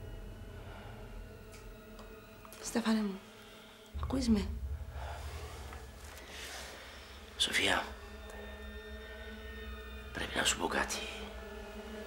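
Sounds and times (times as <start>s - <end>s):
low rumble: 4.0s - 8.3s.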